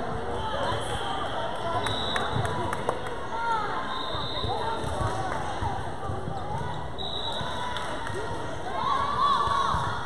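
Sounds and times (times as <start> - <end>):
people calling out in a gym: 0.1 - 2.4, 3.3 - 5.6, 6.3 - 10.0.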